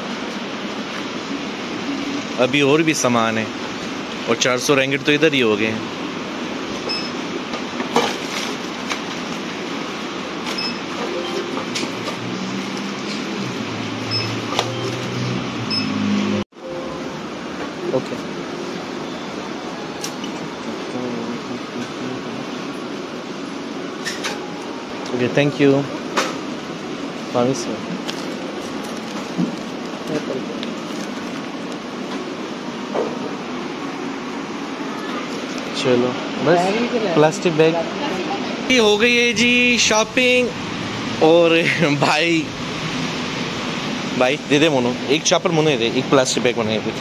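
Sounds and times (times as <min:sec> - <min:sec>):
short high beeps: 0:10.6 - 0:12.0, 0:14.1 - 0:16.0
packaged items being handled: 0:27.9 - 0:31.8
heavy rain hiss: 0:33.5 - 0:47.0.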